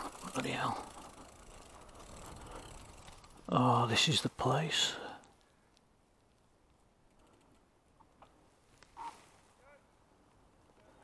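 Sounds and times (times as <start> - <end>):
low rolling noise: 0.0 - 4.4.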